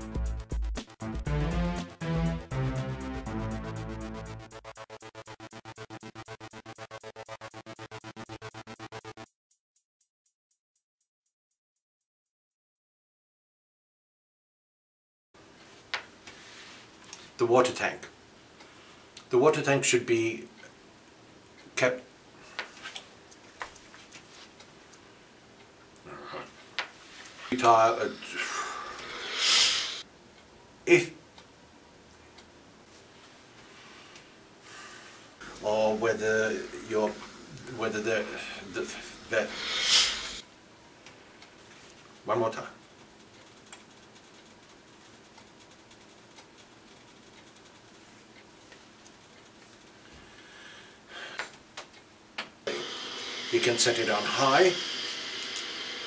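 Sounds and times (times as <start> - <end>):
low room hiss: 15.4 - 56.0
hand rustling steam iron: 35.6 - 40.4
faint ticks: 43.2 - 49.9.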